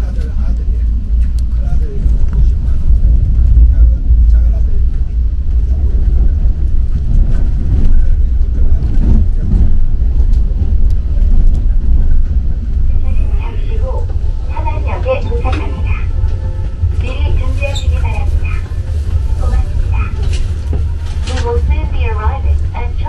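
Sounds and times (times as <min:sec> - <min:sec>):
train rumble from inside cabin: 0:00.0 - 0:23.0.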